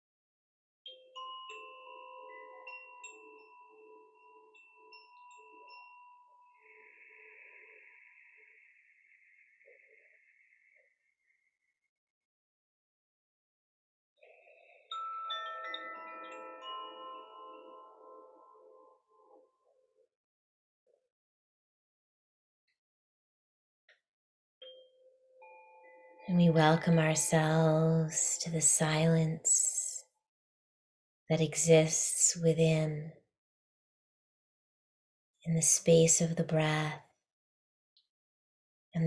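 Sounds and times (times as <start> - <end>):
wooden wind chime ringing: 0.9 - 7.3, 14.4 - 19.0
handheld chime ringing: 14.6 - 19.0.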